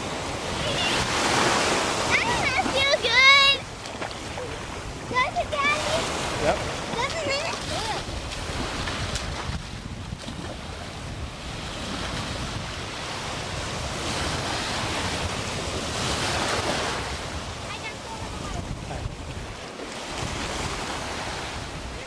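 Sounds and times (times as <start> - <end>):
ocean surf breaking: 0.0 - 22.0
wind rumbling on microphone: 0.0 - 22.0.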